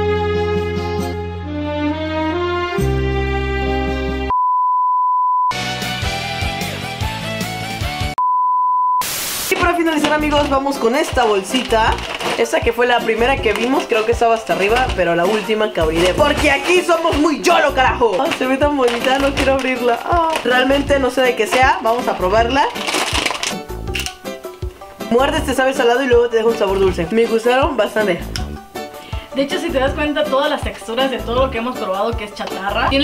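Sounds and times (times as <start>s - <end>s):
high-pitched beep tone: 4.3s - 5.5s
background music with a beat: 5.5s - 8.2s, 23.6s - 33.0s
plastic wrapper crinkling: 9.5s - 25.1s.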